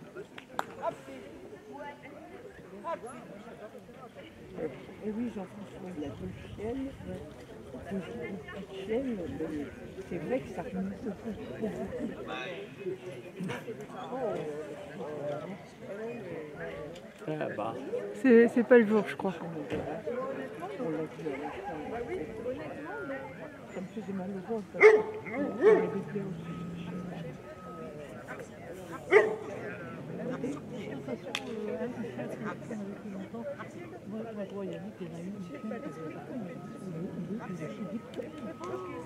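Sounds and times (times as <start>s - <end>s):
people talking indistinctly: 0.0s - 39.0s
dog barking: 24.8s - 26.0s, 29.1s - 29.5s.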